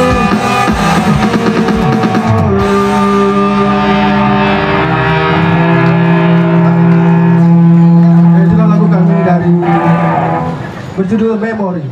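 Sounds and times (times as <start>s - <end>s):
drums: 0.0s - 11.0s
electric guitars and bass chord: 0.0s - 11.1s.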